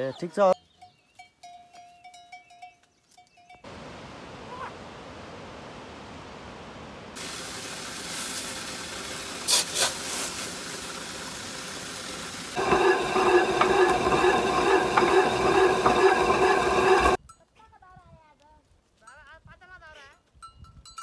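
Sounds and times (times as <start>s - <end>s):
millstone grinding grain: 12.6s - 17.2s
steady hum: 12.6s - 17.2s.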